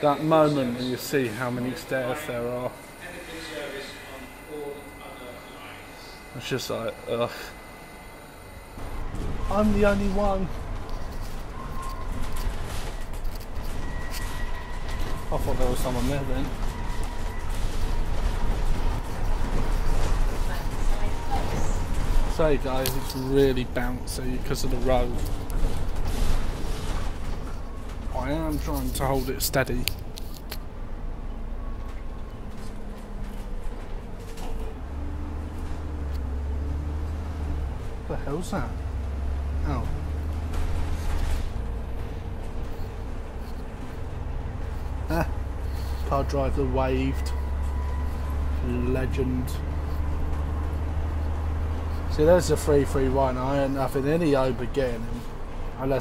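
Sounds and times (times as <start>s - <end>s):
faint high whine: 0.0s - 12.1s
bus engine and road rumble: 0.0s - 56.0s.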